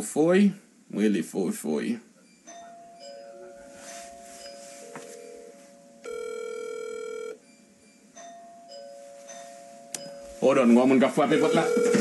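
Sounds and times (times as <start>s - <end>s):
electronic phone ringtone: 2.3s - 10.5s, 11.1s - 12.0s.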